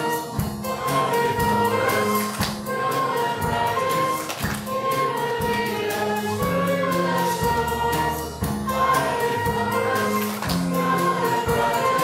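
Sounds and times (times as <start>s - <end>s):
congregation singing: 0.0s - 12.0s
instrumental accompaniment: 0.0s - 12.0s.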